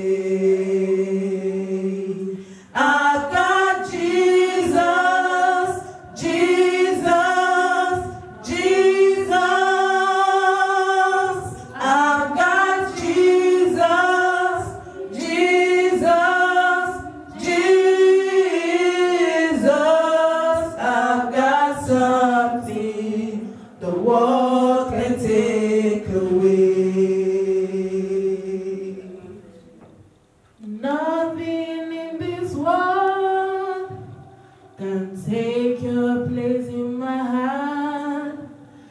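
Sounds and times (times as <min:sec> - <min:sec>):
women singing unaccompanied: 0:00.0 - 0:29.0, 0:30.6 - 0:38.7.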